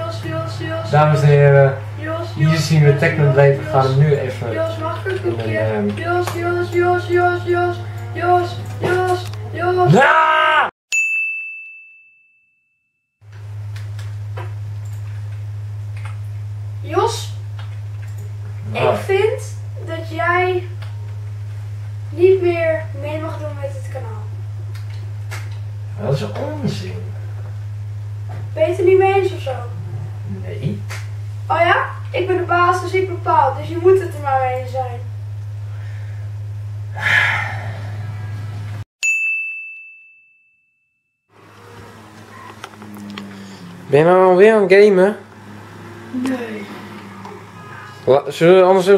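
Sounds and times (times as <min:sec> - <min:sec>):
low electrical hum: 0:00.0 - 0:10.6, 0:13.2 - 0:38.8, 0:41.4 - 0:48.9
high ringing ding: 0:10.9 - 0:12.9, 0:39.0 - 0:41.0.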